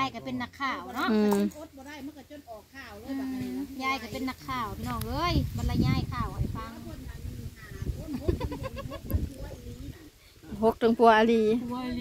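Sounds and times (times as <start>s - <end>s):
woman speaking: 9.3s - 12.0s.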